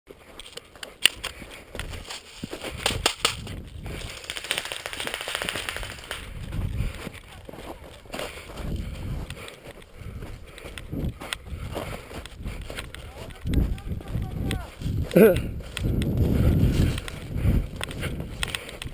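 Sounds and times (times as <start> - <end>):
rustling of branches and gear: 0.1 - 18.9
sharp clicks: 2.8 - 6.4, 17.8 - 18.9.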